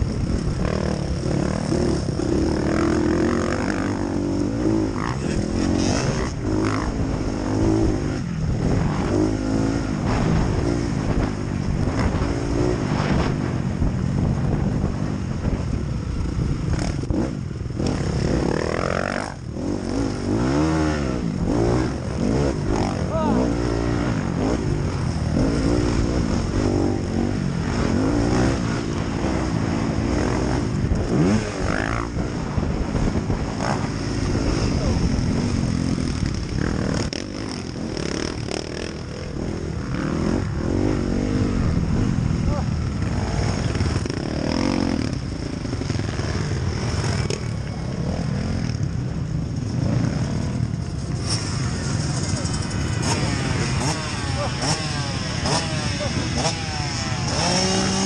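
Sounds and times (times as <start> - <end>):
motocross bike engine revving: 0.0 - 58.0.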